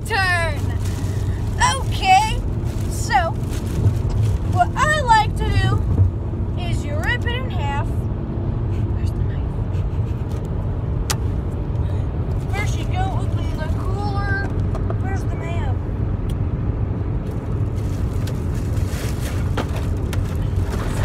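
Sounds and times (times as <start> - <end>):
car cabin rumble: 0.0 - 21.0
plastic crinkling: 0.5 - 4.7.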